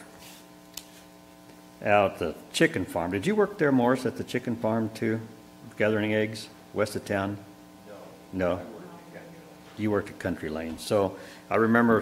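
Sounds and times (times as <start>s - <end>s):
electrical mains hum: 0.0s - 12.0s
man talking: 1.8s - 12.0s.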